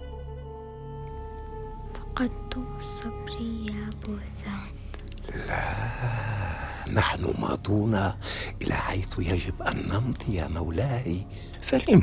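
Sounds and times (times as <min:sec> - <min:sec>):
quiet background music: 0:00.0 - 0:12.0
boy whispering: 0:01.9 - 0:06.6.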